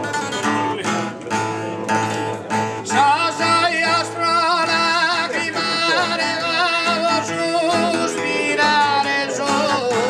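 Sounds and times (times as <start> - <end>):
acoustic guitar: 0.0 - 10.0
man singing ornamented line: 2.9 - 10.0.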